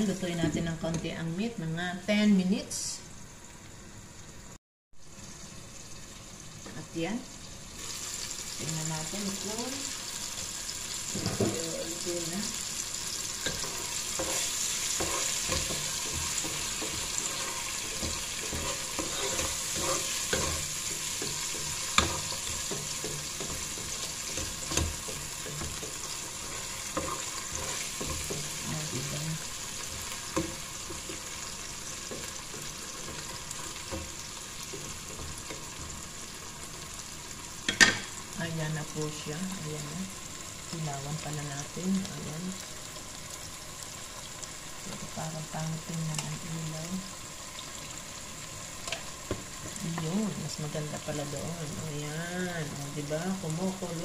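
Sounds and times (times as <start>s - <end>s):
meat and onions sizzling: 0.0s - 54.0s
spatula stirring: 13.0s - 36.7s.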